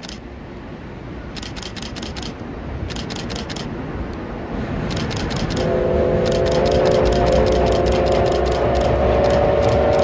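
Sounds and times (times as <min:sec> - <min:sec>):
train rumbling on steel bridge: 0:00.0 - 0:10.0.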